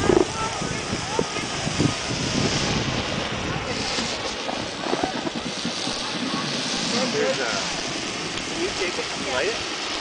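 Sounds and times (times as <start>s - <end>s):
faint voices: 0.0s - 9.7s
steady hiss: 0.0s - 10.0s
wind buffeting microphone: 0.0s - 10.0s.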